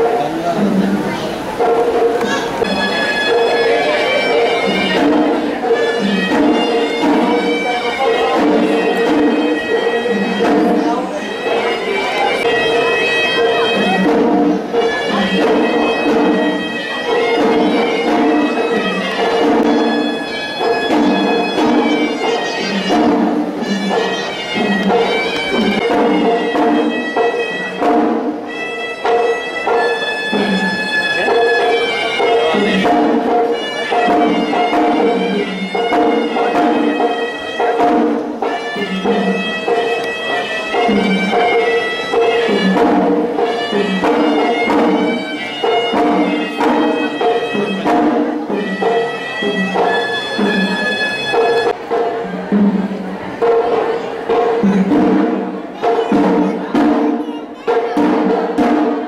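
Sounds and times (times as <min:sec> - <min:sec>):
double-reed pipe melody: 0:00.0 - 0:52.5
drum strokes: 0:00.0 - 0:59.0.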